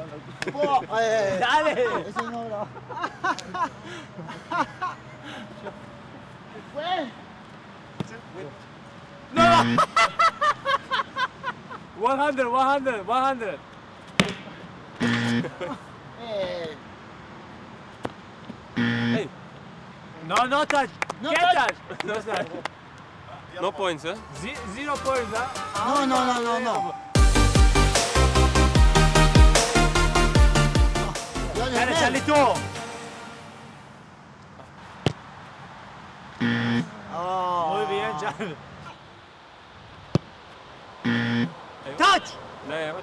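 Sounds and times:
faint outdoor background: 0.0s - 43.0s
ball kicked on grass: 34.6s - 35.3s, 40.0s - 40.4s
football kick: 35.0s - 35.2s, 40.1s - 40.4s.

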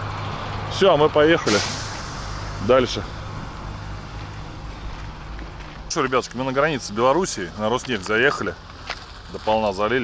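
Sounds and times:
diesel truck engine idling: 0.0s - 10.0s.

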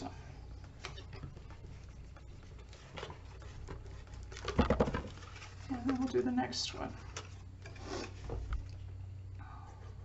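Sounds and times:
steady low hum: 0.0s - 10.0s
cardstock rustling and rubbing: 0.6s - 8.4s.

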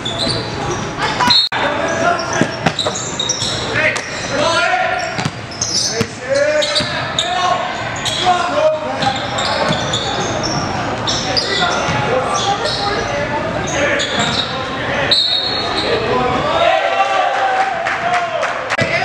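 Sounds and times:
basketball bouncing on court: 5.1s - 7.0s.

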